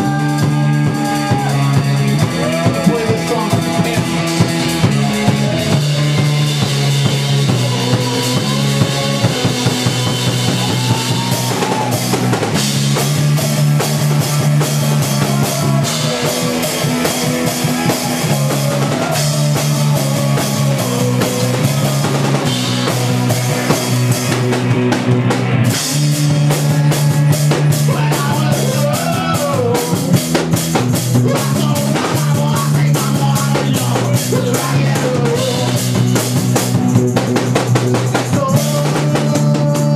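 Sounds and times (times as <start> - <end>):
drum kit: 0.0 - 39.9
electric guitar: 0.0 - 39.9
held bass notes: 0.0 - 39.9.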